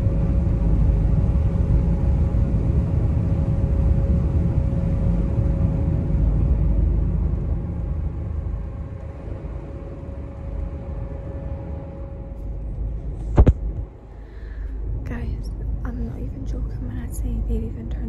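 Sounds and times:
faint steady hum: 0.0s - 18.0s
ferry engine rumble: 0.0s - 18.0s.

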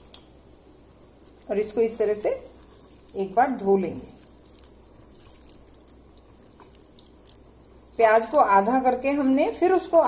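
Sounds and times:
low steady hum: 0.0s - 10.0s
wet squelching of onions in water: 1.0s - 10.0s.

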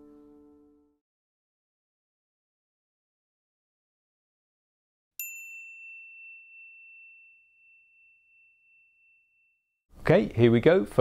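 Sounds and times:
bright bell ding: 5.2s - 9.8s.

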